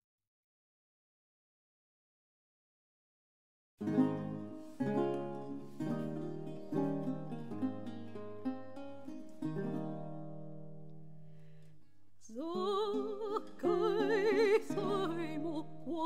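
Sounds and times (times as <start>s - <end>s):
plucked guitar chords: 3.8s - 11.8s, 12.6s - 16.0s
soprano singing with vibrato: 12.2s - 16.0s.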